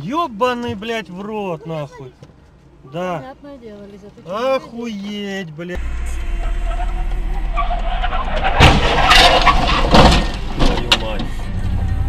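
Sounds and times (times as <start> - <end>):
car engine and road drone: 5.7 - 12.0
loud sharp noises: 6.4 - 10.8.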